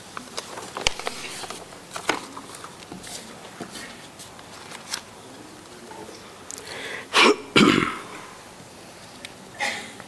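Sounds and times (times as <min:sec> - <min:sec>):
man clearing his throat: 0:07.1 - 0:08.4.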